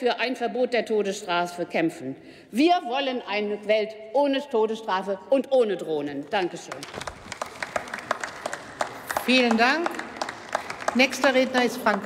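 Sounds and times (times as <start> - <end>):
small group clapping: 6.4 - 12.0.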